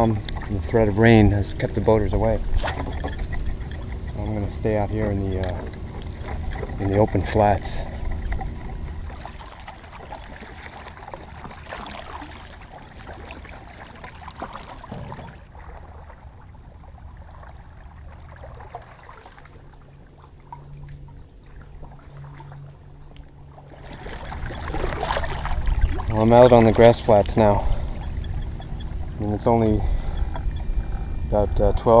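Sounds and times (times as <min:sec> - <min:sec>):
paddle splashing water: 0:00.0 - 0:32.0.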